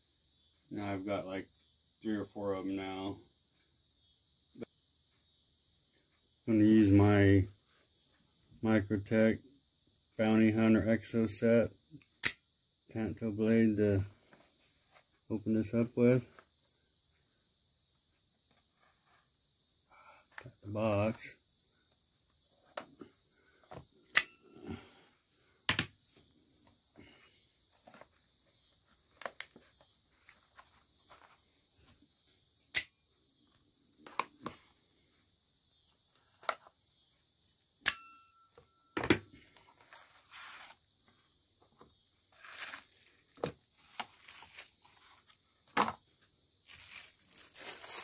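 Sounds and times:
sharp clicks and snaps: 12.0s - 12.4s, 32.7s - 33.0s
plastic wrapping rustling: 42.4s - 45.2s, 46.6s - 48.0s
packaging tearing: 46.7s - 48.0s.

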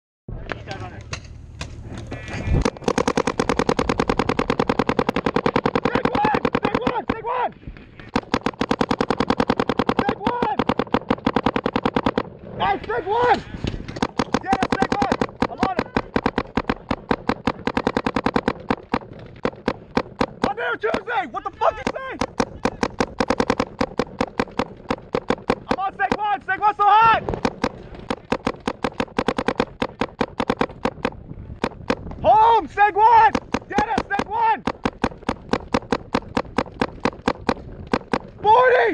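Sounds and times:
paintball markers firing: 0.5s - 38.8s
players shouting: 5.8s - 7.6s, 10.0s - 10.6s, 12.6s - 13.6s, 14.4s - 16.2s, 20.4s - 23.0s, 25.6s - 27.3s, 32.2s - 34.6s, 38.4s - 38.9s.

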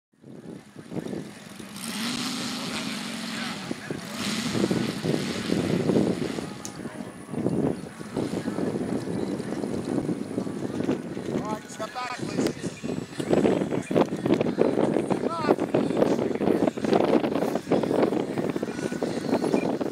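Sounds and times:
model airplane engine running: 0.4s - 6.8s.

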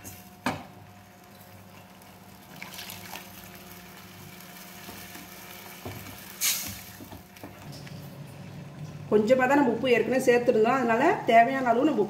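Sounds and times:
water pouring into gravy: 2.4s - 3.8s.

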